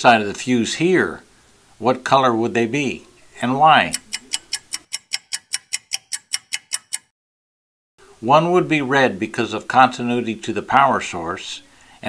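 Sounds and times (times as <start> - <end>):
clock ticking: 3.7 - 7.1.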